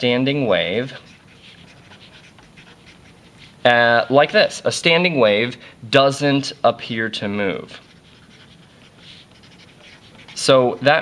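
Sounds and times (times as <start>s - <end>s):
marker scratching on paper: 0.3s - 4.6s, 7.5s - 11.0s.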